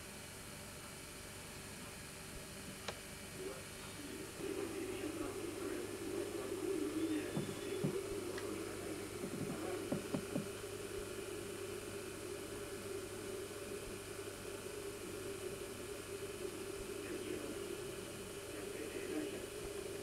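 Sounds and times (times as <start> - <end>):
low hum with hiss: 0.0 - 20.0
faint taps: 7.4 - 8.5, 9.2 - 10.5.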